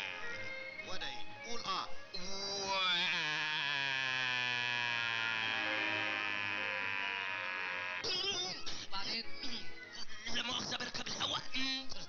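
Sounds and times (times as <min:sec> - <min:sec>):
man holding an aaah sound: 0:03.0 - 0:08.0.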